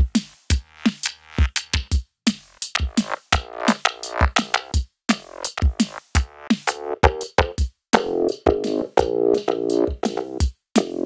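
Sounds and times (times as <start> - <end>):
electronic drum loop: 0.0 - 11.0
buzzy synth bass: 0.5 - 1.5, 2.5 - 11.0.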